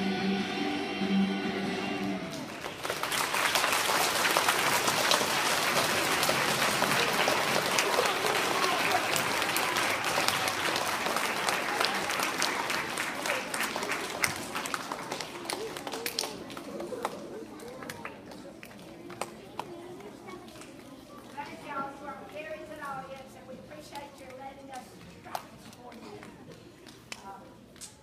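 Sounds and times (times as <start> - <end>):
audience applauding: 2.2 - 19.5.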